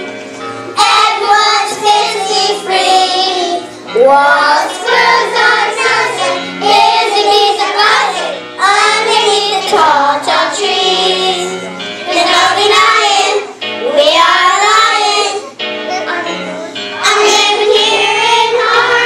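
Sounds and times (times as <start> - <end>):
children's chorus singing: 0.8 - 19.0.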